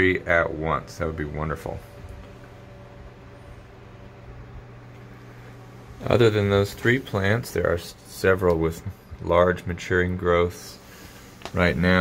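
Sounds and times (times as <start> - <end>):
fan motor hum: 0.0 - 12.0.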